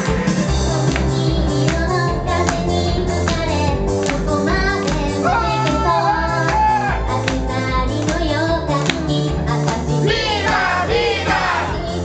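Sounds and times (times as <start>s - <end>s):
bass line: 0.4s - 12.0s
woman singing pop song: 0.9s - 12.0s.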